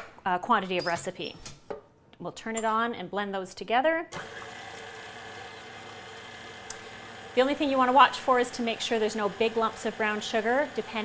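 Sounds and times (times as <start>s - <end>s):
stand mixer running: 4.2s - 11.0s.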